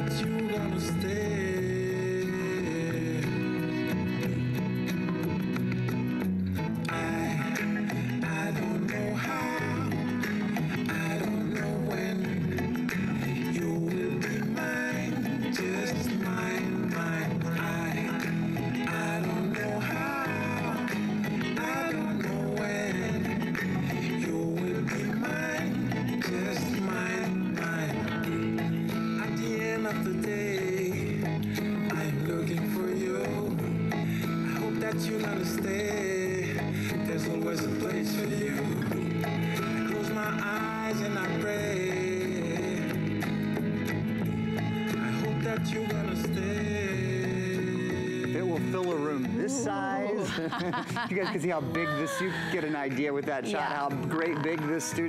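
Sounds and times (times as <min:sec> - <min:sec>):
reggae song with singing: 0:00.0 - 0:55.0.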